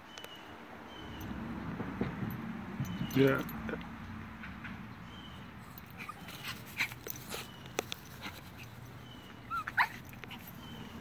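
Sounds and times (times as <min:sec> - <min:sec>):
small dog yelping: 0:05.6 - 0:10.9.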